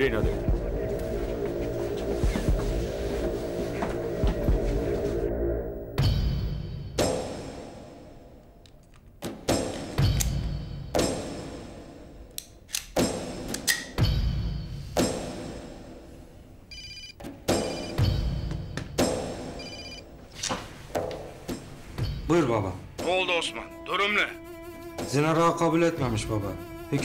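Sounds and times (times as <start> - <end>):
dramatic music with low hits: 0.0 - 8.0
mobile phone ringing: 16.7 - 18.1, 19.6 - 20.1.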